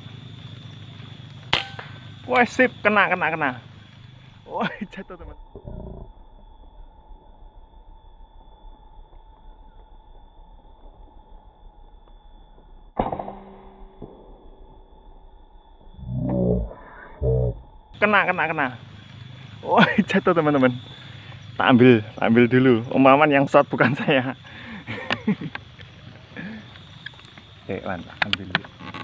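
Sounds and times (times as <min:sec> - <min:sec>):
low background hum: 0:00.0 - 0:29.0
air rifle shot: 0:01.5 - 0:02.2.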